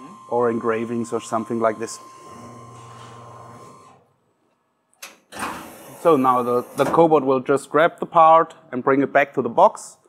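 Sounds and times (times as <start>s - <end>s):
milling machine humming: 0.0s - 4.0s.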